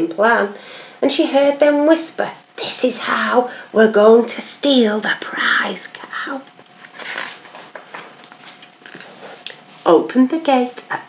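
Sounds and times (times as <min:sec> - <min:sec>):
paper pages rustling: 0:06.7 - 0:09.4.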